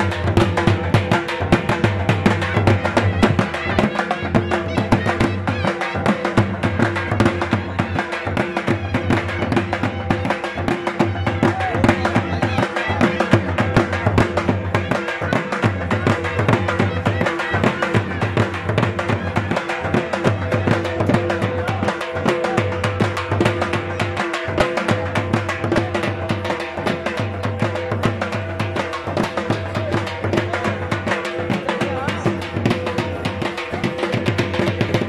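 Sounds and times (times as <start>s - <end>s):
barrel drums fast folk beat: 0.0s - 35.0s.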